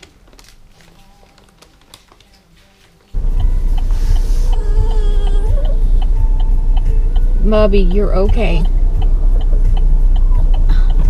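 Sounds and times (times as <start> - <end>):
car cabin low rumble: 3.2 - 11.0.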